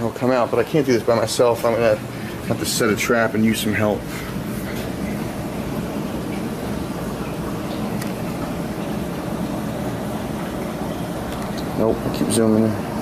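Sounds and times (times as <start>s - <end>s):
aquarium pumps humming: 0.0s - 13.0s.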